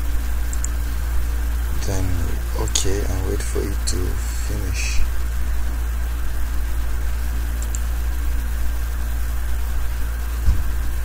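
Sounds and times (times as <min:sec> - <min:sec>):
steady low hum: 0:00.0 - 0:11.0
even hiss: 0:01.6 - 0:05.3.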